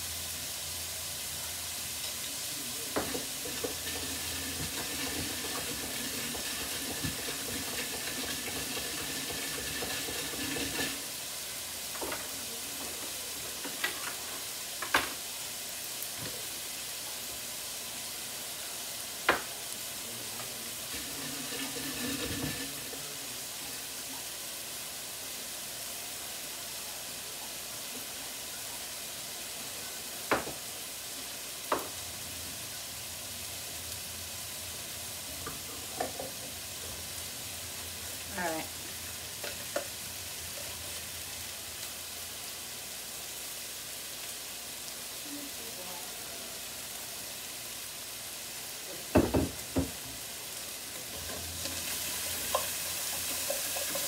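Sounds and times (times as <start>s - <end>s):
food sizzling in a pan: 0.0s - 54.0s.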